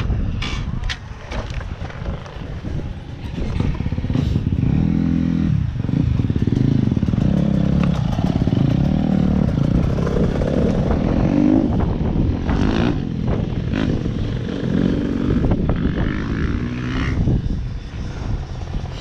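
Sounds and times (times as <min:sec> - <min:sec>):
dirt bike engine revving: 0:03.4 - 0:19.0.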